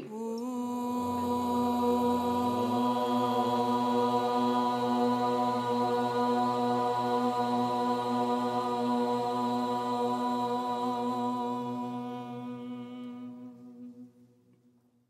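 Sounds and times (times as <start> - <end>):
low drone tone: 0.0 - 14.2
chanted mantra on one pitch: 0.0 - 14.3.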